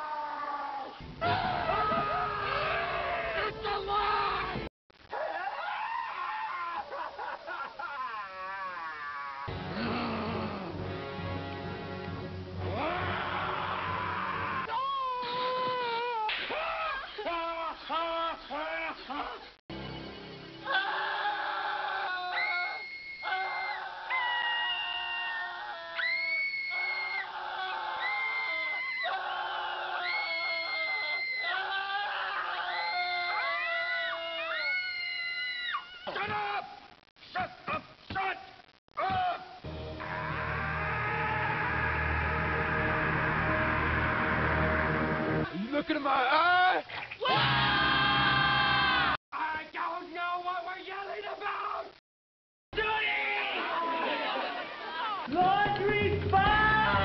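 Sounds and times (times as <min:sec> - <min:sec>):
people screaming: 0:00.0 - 0:10.8, 0:12.6 - 0:19.4, 0:20.6 - 0:36.7, 0:39.0 - 0:45.6, 0:47.0 - 0:49.2, 0:52.8 - 0:57.0
music: 0:01.0 - 0:03.7, 0:09.5 - 0:14.6, 0:19.7 - 0:20.7, 0:39.6 - 0:45.5, 0:55.3 - 0:57.0
man wailing: 0:06.5 - 0:10.9.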